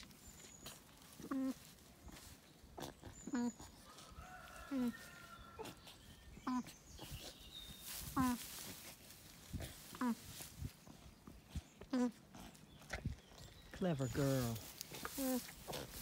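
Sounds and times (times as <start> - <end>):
alpaca humming: 0.0 - 3.9, 4.5 - 7.2, 8.0 - 8.7, 9.6 - 11.1, 11.8 - 12.6, 14.7 - 16.0.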